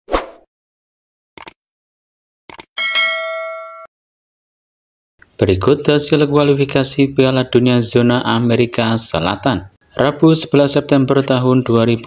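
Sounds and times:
notification bell ding: 0:02.8 - 0:03.9.

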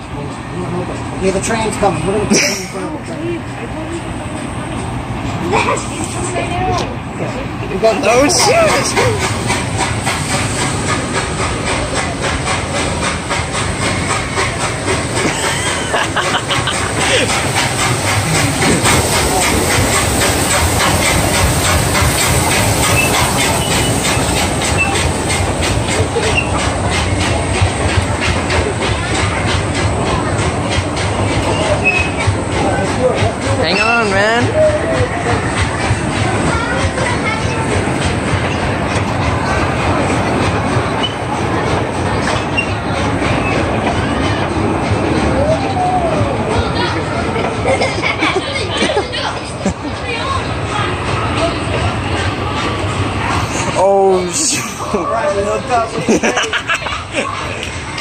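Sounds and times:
train wheels clicking over rail joints: 0:00.1 - 0:54.4, 0:55.2 - 0:58.0.

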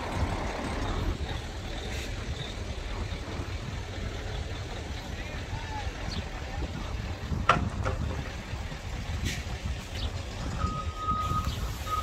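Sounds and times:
constant low rumble: 0:00.0 - 0:12.0
electronic vehicle warning beeper: 0:10.5 - 0:12.0.

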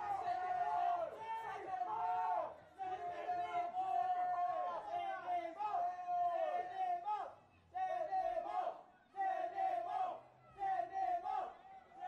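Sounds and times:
loud drawn-out shouting: 0:00.0 - 0:12.0.

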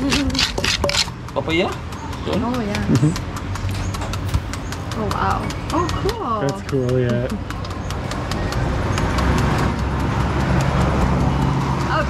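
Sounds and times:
knife chopping papaya: 0:00.0 - 0:01.1
vehicle engine humming: 0:00.0 - 0:12.0.

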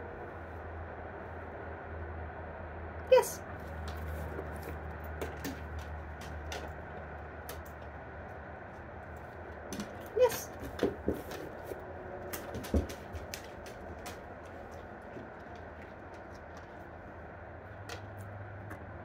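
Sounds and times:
light clicks and taps from hands: 0:03.6 - 0:08.0.

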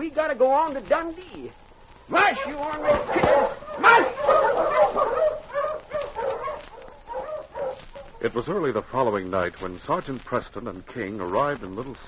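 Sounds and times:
sled dogs barking and yelping: 0:02.1 - 0:08.4.

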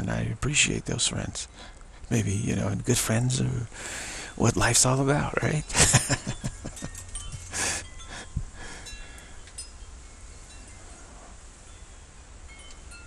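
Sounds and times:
low steady hum: 0:00.0 - 0:13.0
breathy exhale: 0:03.7 - 0:04.4
faint tinkling chimes: 0:05.2 - 0:13.0.

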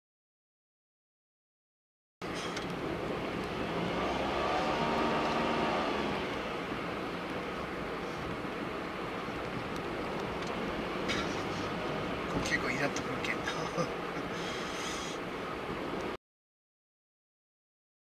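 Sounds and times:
engine tone: 0:02.2 - 0:08.2
road noise inside car cabin: 0:02.2 - 0:16.2.

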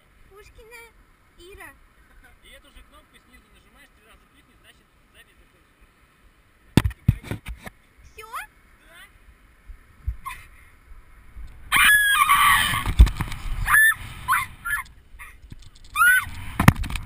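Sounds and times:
wind rushing across camera: 0:11.2 - 0:17.0
short yelps: 0:11.7 - 0:12.9, 0:13.6 - 0:15.4, 0:16.0 - 0:16.3
woman screaming: 0:11.7 - 0:12.9, 0:13.6 - 0:15.4, 0:16.0 - 0:16.3.

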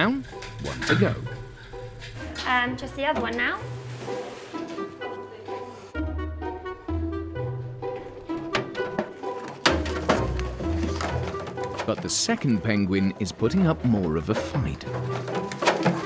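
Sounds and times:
plucked and bowed strings: 0:07.9 - 0:16.0.

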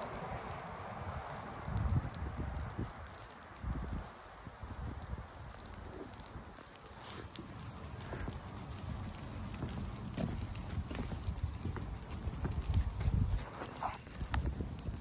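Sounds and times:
leaves and brush burning crackling: 0:00.0 - 0:15.0
wind rumble: 0:00.0 - 0:15.0.

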